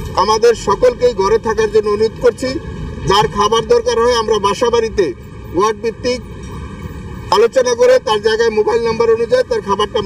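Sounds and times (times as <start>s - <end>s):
man speaking: 0.2s - 6.2s, 7.3s - 10.0s.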